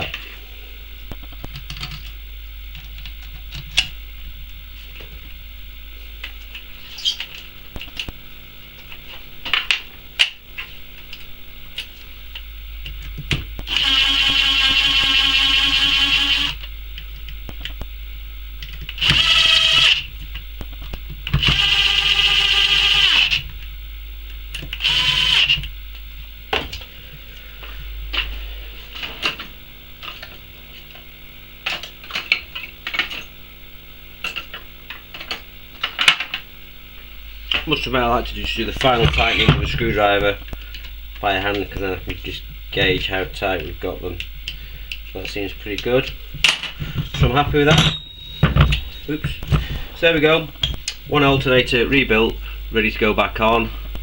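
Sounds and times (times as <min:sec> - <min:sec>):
drill motor whine: 0:13.6 - 0:16.7, 0:18.9 - 0:20.3, 0:21.2 - 0:23.6, 0:24.6 - 0:25.7.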